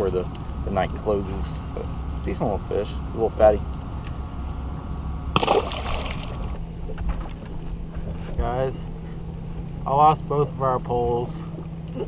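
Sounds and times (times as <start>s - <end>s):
fish splash in water: 5.4s - 6.4s.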